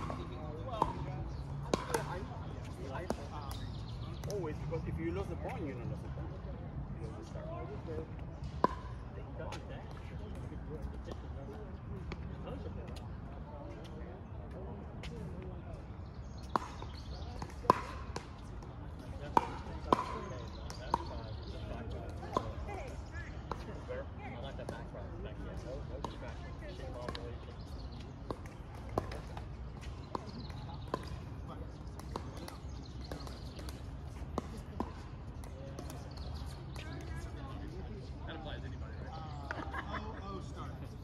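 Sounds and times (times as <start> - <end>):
murmur of voices: 0.0 - 41.0.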